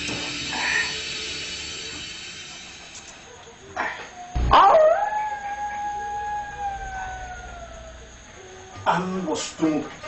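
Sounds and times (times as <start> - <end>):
long howl sinking in pitch: 3.9 - 9.4
sudden loud noise: 4.4 - 5.2.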